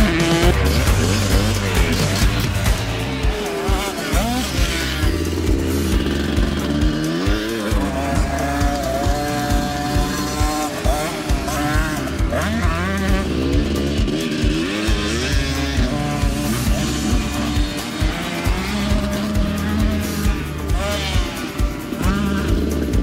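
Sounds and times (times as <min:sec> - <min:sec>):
dirt bike engine revving: 0:00.0 - 0:23.0
music with steady beat: 0:00.0 - 0:23.0.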